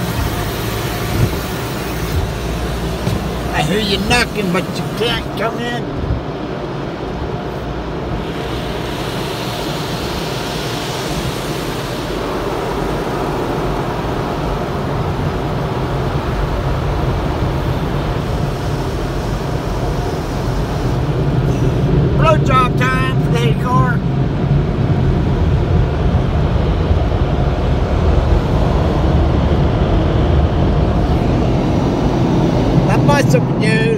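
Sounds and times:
car wash water spray and machinery: 0.0s - 33.9s.

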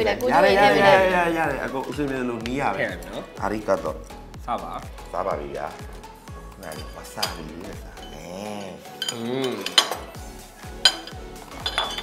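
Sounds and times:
background music with beat: 0.0s - 12.0s
cutlery clinking on plates: 6.6s - 8.2s, 8.9s - 10.2s, 10.8s - 12.0s.

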